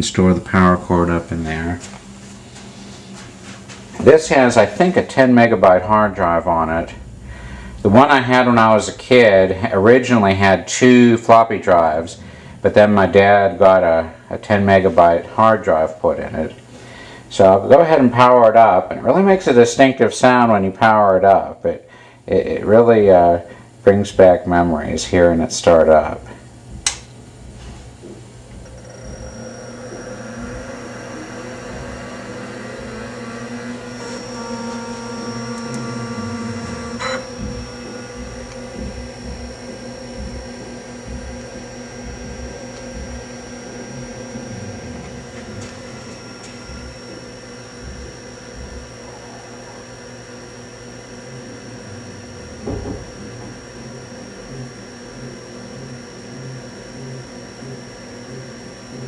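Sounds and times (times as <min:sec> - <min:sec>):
computer fan and hard drive whine: 0:00.0 - 0:59.0
sharp click: 0:26.8 - 0:27.2.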